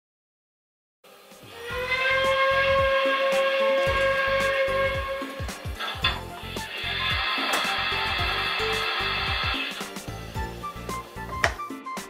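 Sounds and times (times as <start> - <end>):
music with low beat: 1.4 - 12.0
steam locomotive whistle: 1.5 - 11.2.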